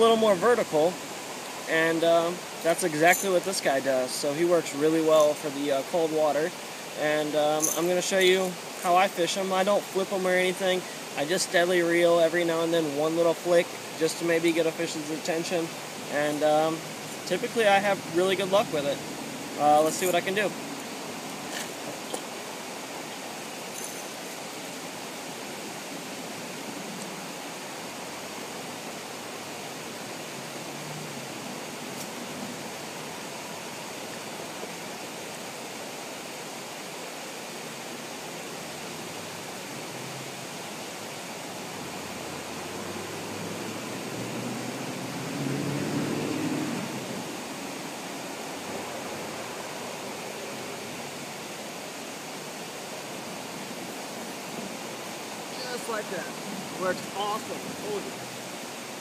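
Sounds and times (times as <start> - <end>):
outdoor background hiss: 0.0 - 59.0.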